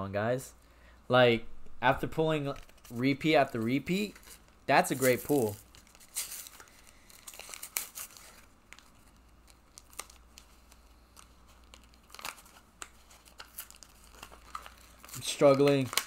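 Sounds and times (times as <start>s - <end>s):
foil wrapper crinkling: 2.4s - 16.0s.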